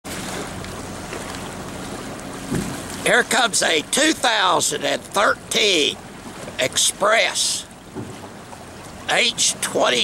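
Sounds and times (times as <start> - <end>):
small waves lapping: 0.0 - 10.0.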